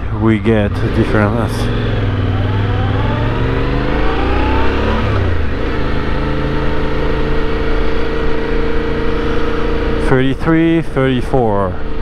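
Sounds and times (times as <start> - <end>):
motorcycle engine accelerating: 0.0 - 10.8.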